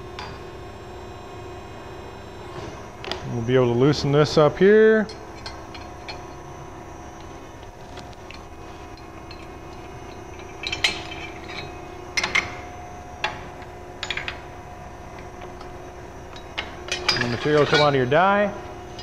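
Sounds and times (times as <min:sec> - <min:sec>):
steady hum: 0:00.0 - 0:19.0
steel pins clinking and clanking: 0:05.0 - 0:06.5, 0:08.0 - 0:14.6, 0:15.2 - 0:19.0.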